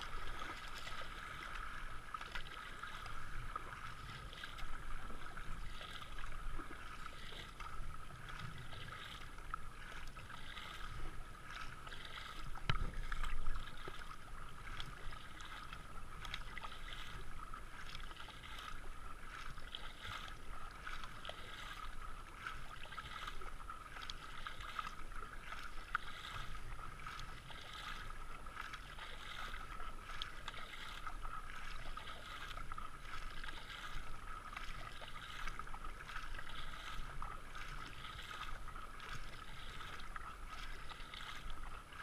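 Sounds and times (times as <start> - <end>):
paddle strokes splashing water: 0.0 - 42.0
water rushing along hull: 0.0 - 42.0.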